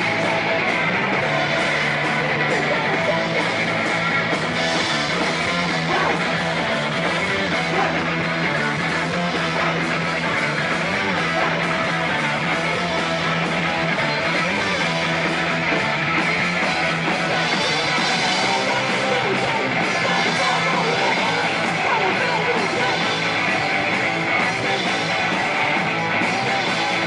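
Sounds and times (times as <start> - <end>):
live rock band playing: 0.0 - 27.0.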